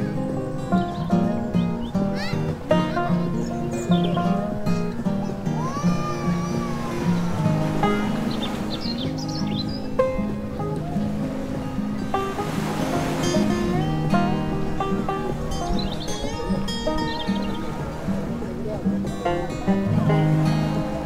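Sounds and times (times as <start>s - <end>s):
instrumental background music: 0.0s - 21.0s.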